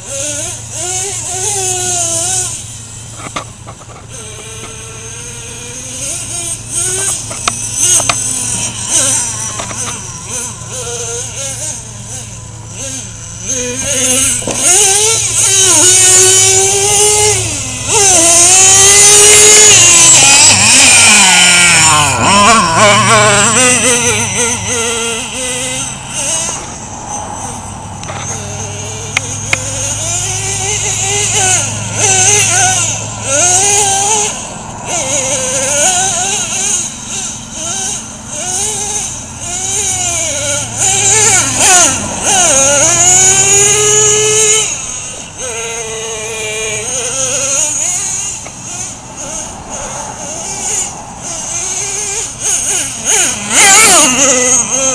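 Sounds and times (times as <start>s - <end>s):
rc truck engine revving: 0.0s - 54.9s.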